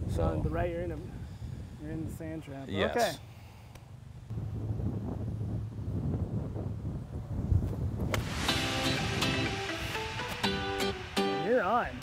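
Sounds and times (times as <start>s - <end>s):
wind rumble on microphone: 0.0s - 2.6s, 4.3s - 10.5s
acoustic guitar music: 8.2s - 12.0s.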